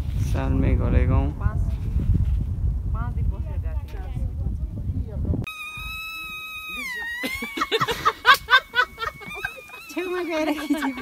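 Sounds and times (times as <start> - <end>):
quick chirping vocal sounds: 5.5 - 7.4
long high-pitched sliding call: 5.5 - 7.7, 8.7 - 11.0.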